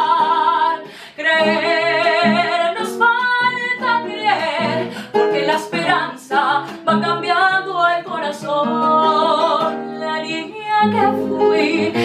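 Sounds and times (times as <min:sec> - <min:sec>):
plucked classical guitar: 0:00.0 - 0:12.0
woman singing with vibrato: 0:00.0 - 0:12.0.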